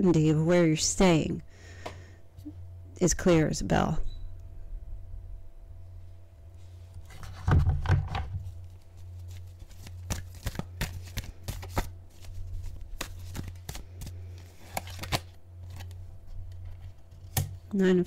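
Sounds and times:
steady low hum: 0:00.0 - 0:18.0
cards being shuffled: 0:06.9 - 0:17.6.

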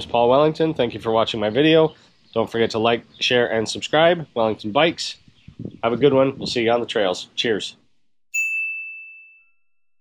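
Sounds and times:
high bell-like ding: 0:08.3 - 0:10.0.

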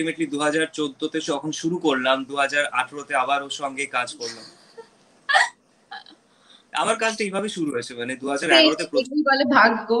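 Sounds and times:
people talking: 0:00.0 - 0:04.6, 0:06.8 - 0:10.0.

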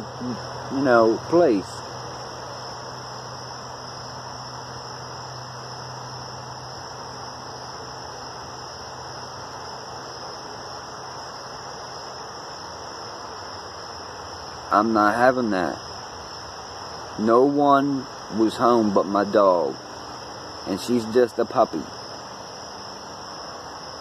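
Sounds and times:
crickets chirping: 0:00.0 - 0:24.0.

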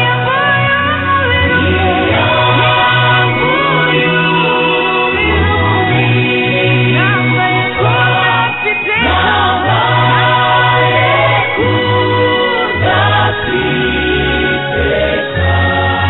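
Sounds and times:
choir singing worship song: 0:00.0 - 0:16.0
sustained bass line: 0:00.0 - 0:16.0.

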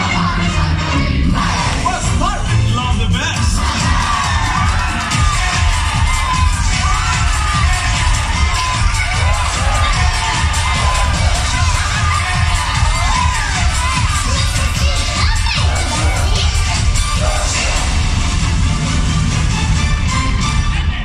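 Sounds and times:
loud show music with pounding beat: 0:00.0 - 0:21.0
children shouting and cheering: 0:03.5 - 0:18.2.

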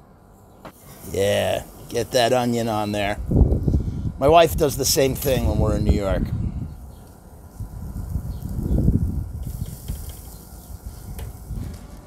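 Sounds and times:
charcoal grill hissing: 0:00.7 - 0:12.0
wind buffeting microphone: 0:01.0 - 0:12.0.

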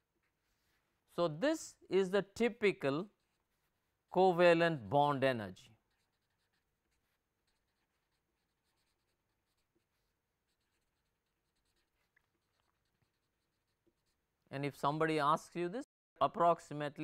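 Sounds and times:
marker writing on paper: 0:03.0 - 0:03.8, 0:05.8 - 0:14.3.

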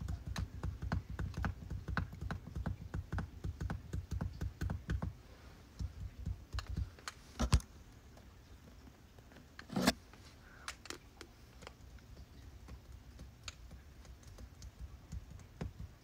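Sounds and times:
rapid light finger taps: 0:00.0 - 0:07.2, 0:11.2 - 0:16.0.

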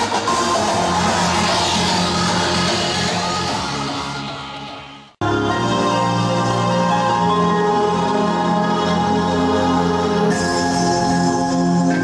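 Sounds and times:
hardstyle dance music: 0:00.0 - 0:12.0.

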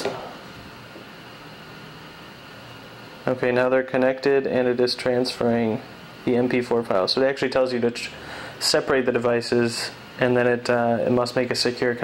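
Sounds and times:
person speaking: 0:00.0 - 0:00.4, 0:03.2 - 0:12.0.

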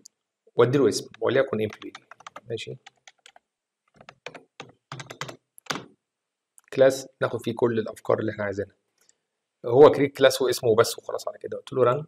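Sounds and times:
computer keyboard typing: 0:01.0 - 0:05.9.

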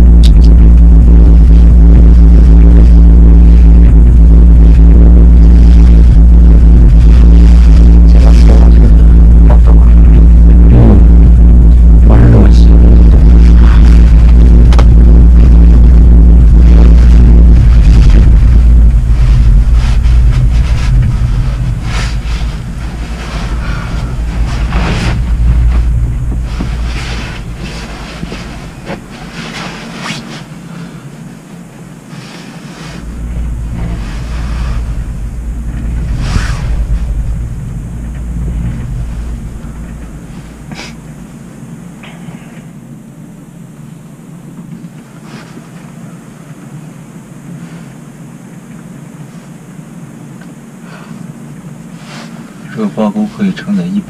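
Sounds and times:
cable car cabin rumble: 0:00.0 - 0:54.0.

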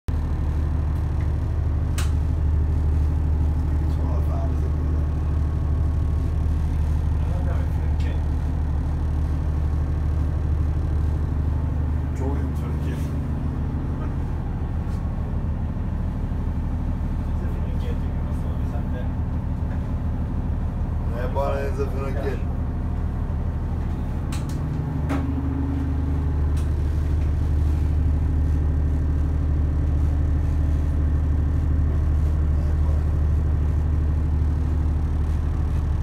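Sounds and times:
boat engine drone: 0:00.1 - 0:36.0.

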